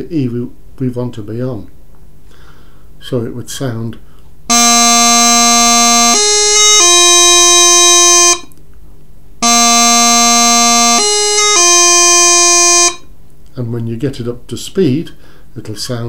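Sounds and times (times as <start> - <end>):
practice chanter playing: 4.5 - 8.5, 9.4 - 13.0.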